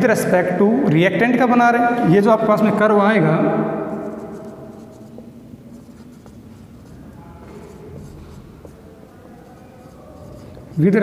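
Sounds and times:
marker scratching on whiteboard: 0:03.8 - 0:11.0.

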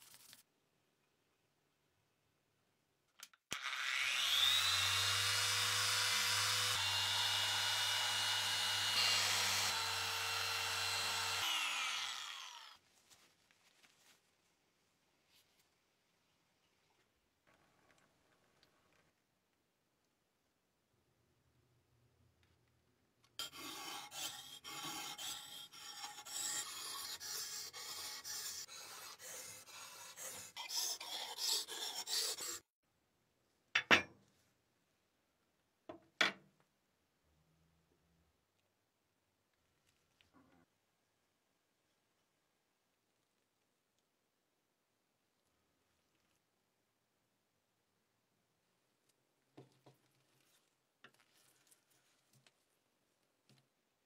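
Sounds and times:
knife scraping on whetstone: 0:23.4 - 0:32.6.

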